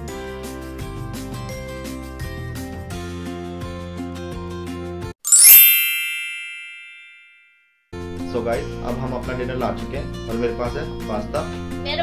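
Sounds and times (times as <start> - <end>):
bright ringing chime: 5.2 - 7.7.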